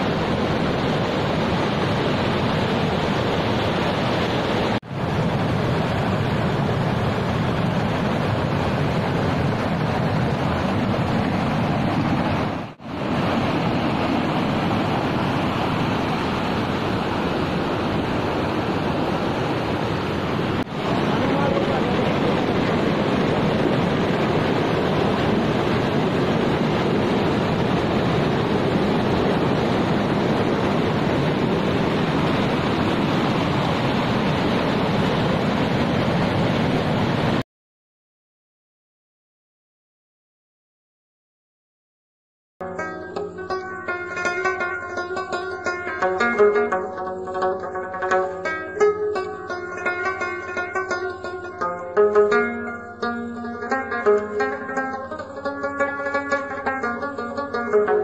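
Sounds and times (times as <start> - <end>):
stream rushing over boulders: 0.0 - 37.4, 42.8 - 58.0.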